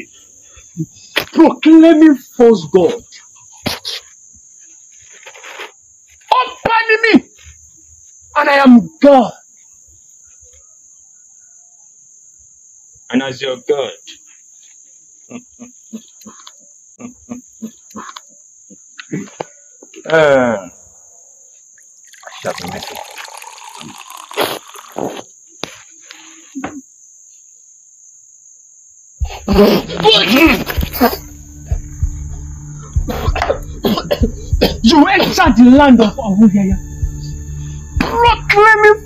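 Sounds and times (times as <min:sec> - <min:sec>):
high-pitched hiss: 0:19.1 - 0:39.0
man laughing: 0:30.4 - 0:31.3
tense film music drone: 0:31.0 - 0:39.0
man coughing: 0:33.1 - 0:34.8.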